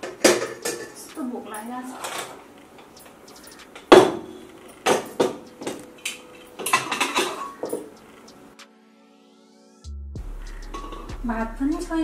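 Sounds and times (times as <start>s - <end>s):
metal cookware clanking on wok: 0.0s - 1.1s, 6.4s - 7.9s, 10.7s - 11.1s
woman's voice: 1.0s - 2.2s, 11.2s - 12.0s.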